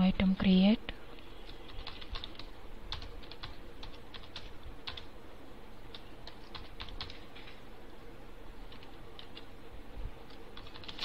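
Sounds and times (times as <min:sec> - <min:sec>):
typing on computer keyboard: 0:01.5 - 0:05.1, 0:05.9 - 0:07.2, 0:08.7 - 0:09.5, 0:10.3 - 0:11.0.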